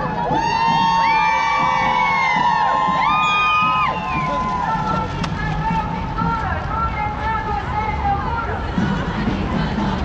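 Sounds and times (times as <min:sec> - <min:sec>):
crowd yelling and cheering: 0:00.0 - 0:05.2.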